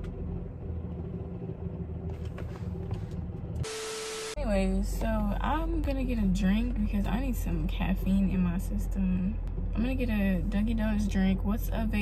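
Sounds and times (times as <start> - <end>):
car idling drone: 0.0 - 12.0.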